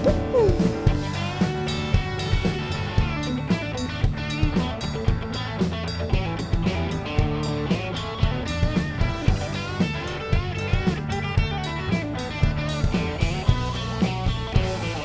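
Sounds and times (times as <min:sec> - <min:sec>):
drum kit: 0:00.0 - 0:15.0
guitar: 0:00.0 - 0:15.0.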